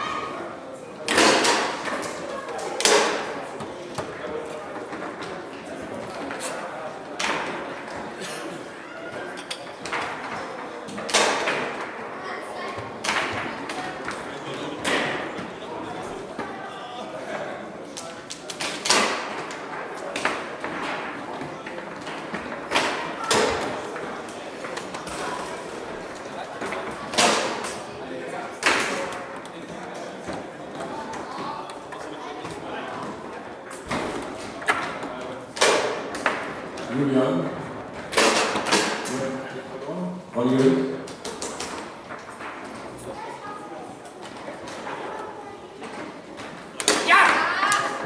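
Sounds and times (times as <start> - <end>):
murmur of voices: 0.0 - 48.0.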